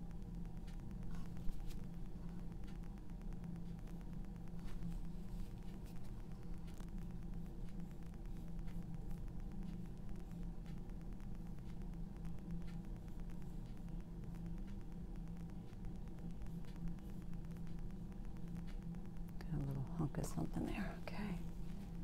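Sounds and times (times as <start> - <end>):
faint ticks: 0.0 - 22.0
low electrical hum: 0.0 - 22.0.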